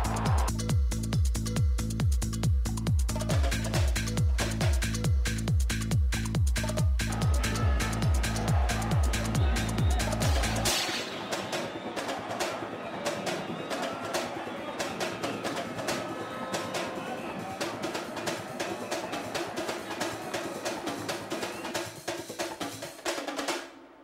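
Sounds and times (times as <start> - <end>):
stadium crowd noise: 0.0 - 0.5, 6.6 - 24.0
drums beating fast: 0.0 - 23.8.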